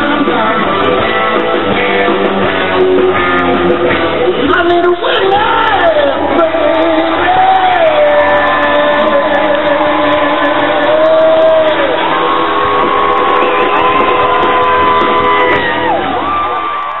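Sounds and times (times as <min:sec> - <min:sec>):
crowd whooping: 0:00.0 - 0:17.0
live rock band playing: 0:00.0 - 0:17.0.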